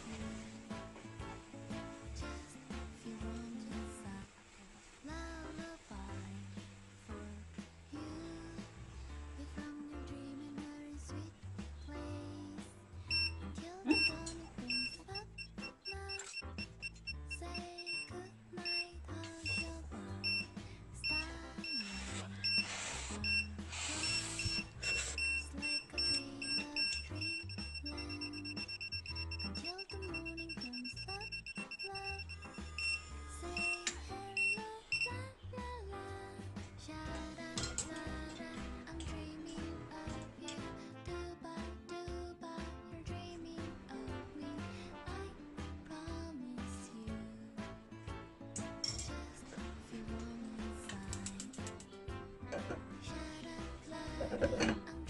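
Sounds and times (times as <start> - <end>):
background music: 0.0 - 4.3, 5.1 - 55.0
stove timer beeping: 13.1 - 35.2.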